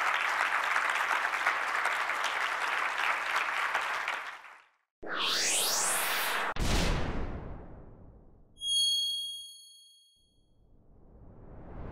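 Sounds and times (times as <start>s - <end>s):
rising whoosh: 5.0s - 8.1s, 10.7s - 11.9s
bright bell-like ding: 8.6s - 10.3s.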